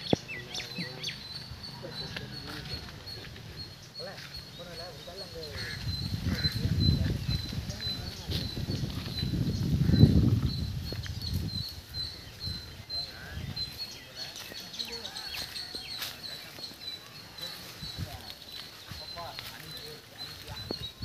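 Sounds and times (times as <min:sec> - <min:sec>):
faint voices: 0:00.0 - 0:10.1, 0:11.8 - 0:21.0
low rumble on microphone: 0:05.8 - 0:13.6.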